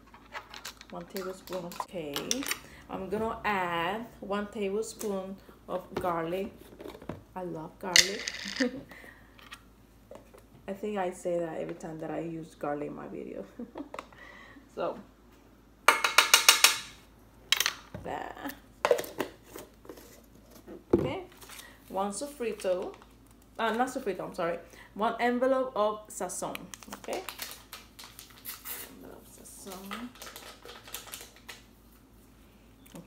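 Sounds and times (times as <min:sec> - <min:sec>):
foil packet crinkling: 0:26.8 - 0:29.0, 0:29.6 - 0:31.6.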